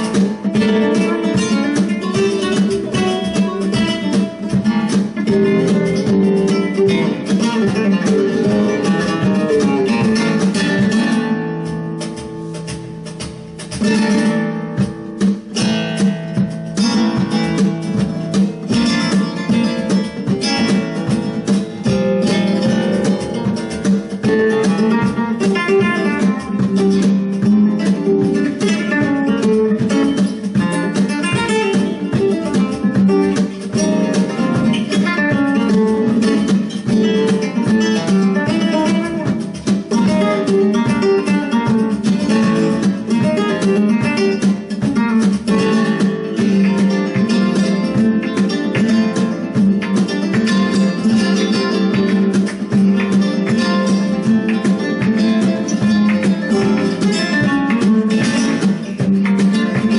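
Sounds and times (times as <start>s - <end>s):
flamenco guitar strummed chords: 0.0s - 59.9s.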